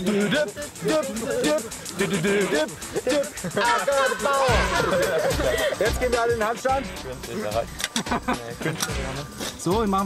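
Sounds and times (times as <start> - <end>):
indistinct voices: 0.0 - 7.8
background music: 0.0 - 10.0.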